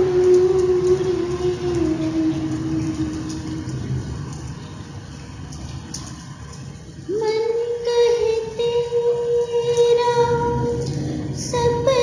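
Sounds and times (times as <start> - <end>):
person singing a long note: 0.0 - 3.8, 7.1 - 12.0
heavy rain hissing: 0.0 - 12.0.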